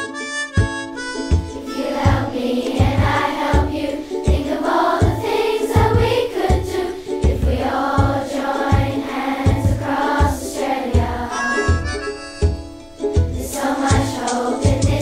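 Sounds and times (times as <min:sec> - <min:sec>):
backing music with low drum beat: 0:00.6 - 0:05.2, 0:05.8 - 0:10.4, 0:11.0 - 0:15.0
children's choir singing: 0:01.6 - 0:11.9, 0:13.3 - 0:15.0.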